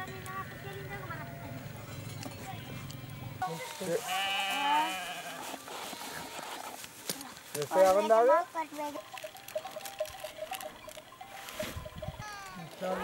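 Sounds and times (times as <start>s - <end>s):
lamb bleating: 3.8s - 6.4s.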